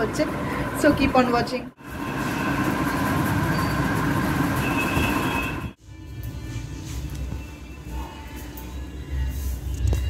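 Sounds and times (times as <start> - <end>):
machine blower rushing noise: 1.8 - 5.8.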